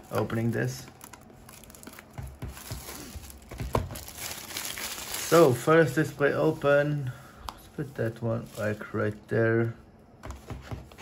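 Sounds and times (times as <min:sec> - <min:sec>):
plastic wrap tearing and crinkling: 0:00.0 - 0:06.9.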